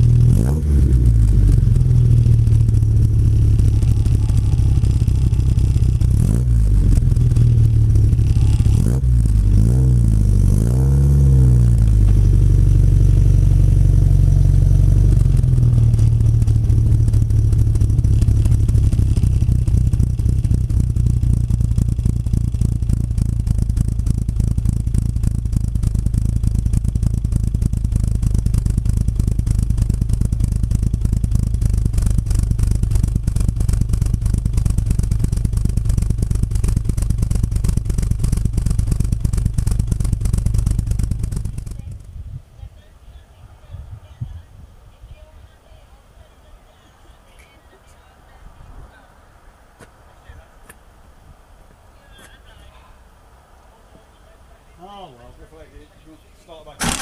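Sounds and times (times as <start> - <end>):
car engine revving and idling: 0.0 - 42.1.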